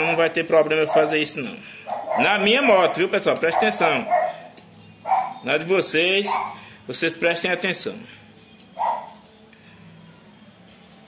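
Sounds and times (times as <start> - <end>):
dog barking: 0.8 - 1.2, 1.9 - 2.5, 3.5 - 5.4, 6.2 - 6.6, 8.8 - 9.2.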